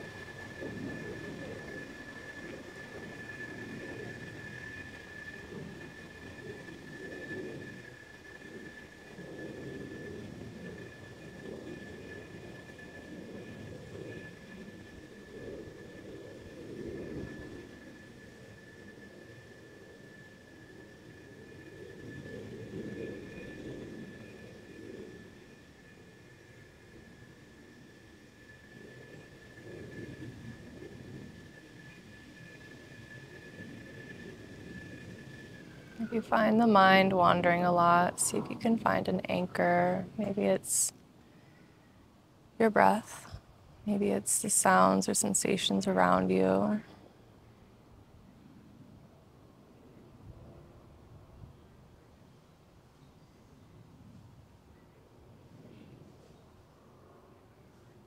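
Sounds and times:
faint high-pitched whine: 0.0s - 58.0s
faint distant rumble: 28.8s - 41.7s.

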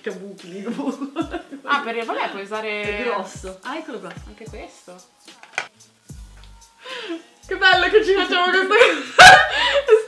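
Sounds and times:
quiet background music: 0.0s - 10.0s.

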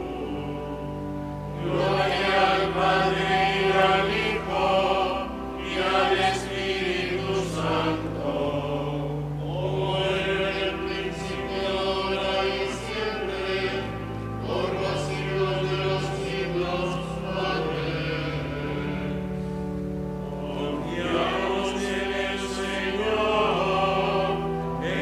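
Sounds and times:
voices singing a chant: 0.0s - 25.0s.

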